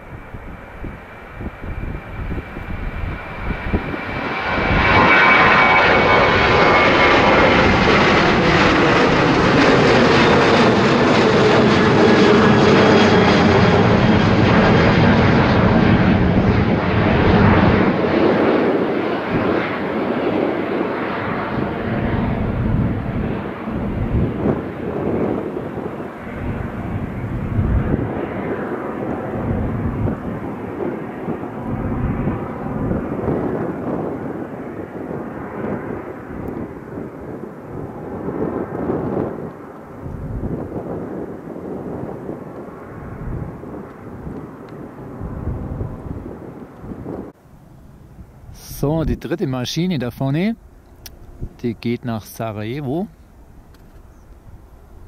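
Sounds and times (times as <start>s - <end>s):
jet engines roaring: 0.0s - 55.0s.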